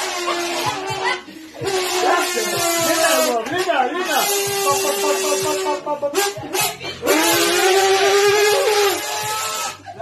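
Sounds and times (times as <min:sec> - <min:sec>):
man blowing horn note through can: 0:00.0 - 0:01.0, 0:01.6 - 0:09.8.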